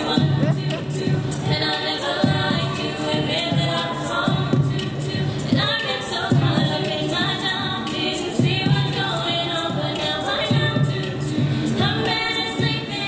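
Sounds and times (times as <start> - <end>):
girls' choir singing a cappella: 0.0 - 13.0.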